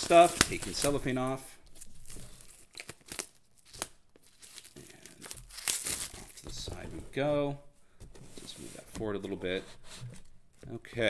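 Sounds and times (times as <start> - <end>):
shrink-wrap crinkling: 0.0 - 6.7.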